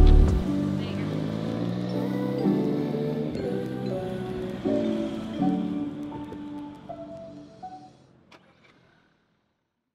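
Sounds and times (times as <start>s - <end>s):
background music held notes: 0.0s - 8.3s.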